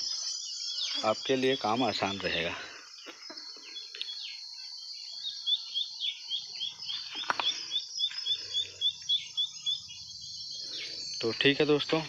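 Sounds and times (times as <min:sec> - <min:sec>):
bird chirping rapidly: 0:00.0 - 0:12.0.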